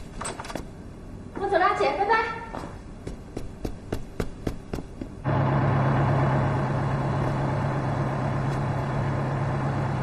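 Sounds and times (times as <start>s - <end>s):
bus engine idling: 5.1s - 10.0s.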